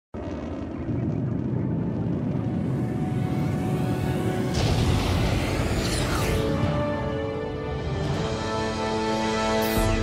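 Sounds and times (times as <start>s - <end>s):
rocket engine low rumble: 0.1s - 7.8s.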